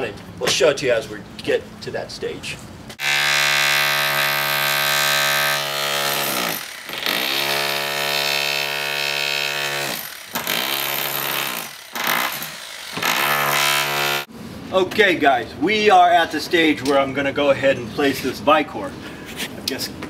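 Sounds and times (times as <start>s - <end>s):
power tool cutting stucco: 3.0s - 14.3s.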